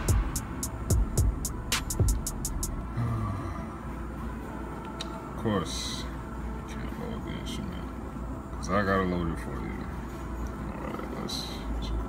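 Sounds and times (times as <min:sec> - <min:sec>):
drum beat with kick and hi-hat: 0:00.0 - 0:02.7
low rumble: 0:00.0 - 0:02.9.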